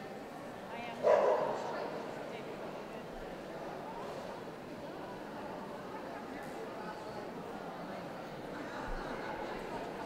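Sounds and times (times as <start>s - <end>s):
murmur of crowd: 0.0s - 10.0s
dog barking: 1.0s - 1.7s.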